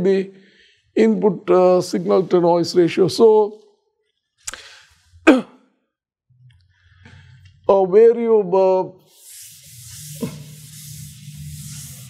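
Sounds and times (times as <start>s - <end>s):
man breathing in: 0.4s - 0.9s, 4.5s - 5.0s.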